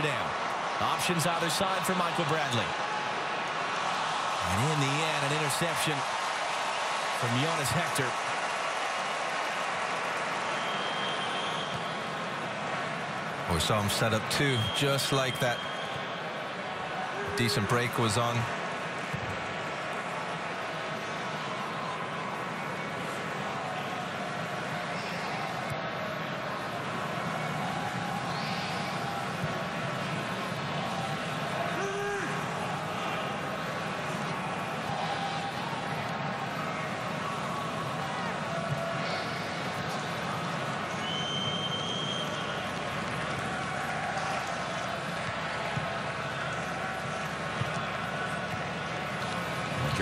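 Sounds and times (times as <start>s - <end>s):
stadium crowd din: 0.0s - 50.0s.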